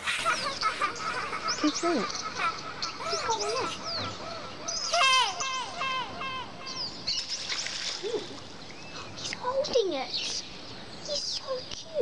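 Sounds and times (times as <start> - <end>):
faint high bird chirps: 0.0 - 12.0.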